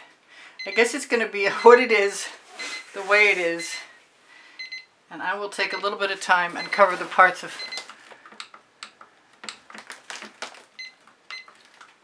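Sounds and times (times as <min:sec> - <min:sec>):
short high beeps: 0:02.6 - 0:03.0.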